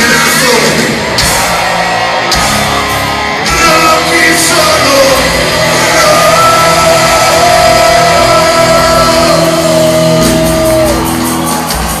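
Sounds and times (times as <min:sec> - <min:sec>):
live rock band: 0:00.0 - 0:12.0.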